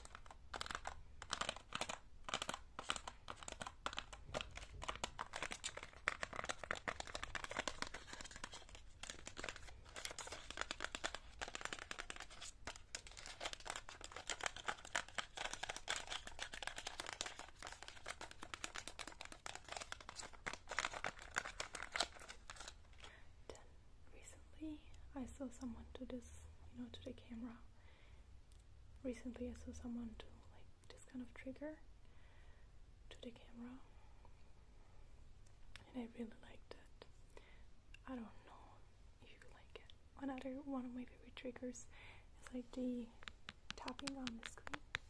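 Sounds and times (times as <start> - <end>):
nails tapping and scratching cardboard: 43.2 - 45.0.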